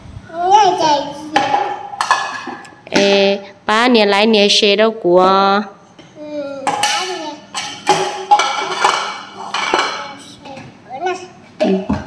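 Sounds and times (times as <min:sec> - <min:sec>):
dishes clattering on tiled floor: 0:01.4 - 0:03.2, 0:06.0 - 0:10.7, 0:11.6 - 0:12.0.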